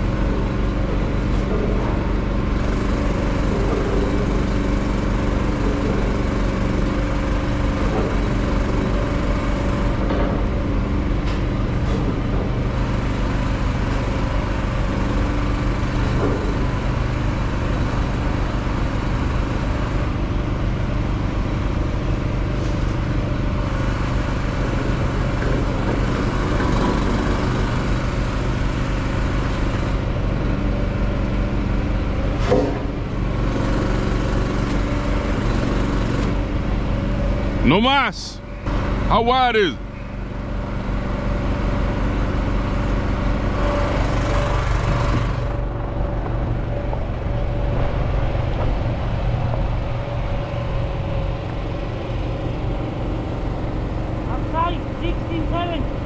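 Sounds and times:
diesel truck engine idling: 0:36.4 - 0:56.0.

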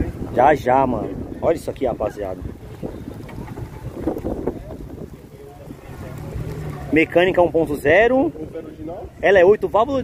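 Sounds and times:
faint voices: 0:00.0 - 0:10.0
wind buffeting microphone: 0:00.0 - 0:10.0.

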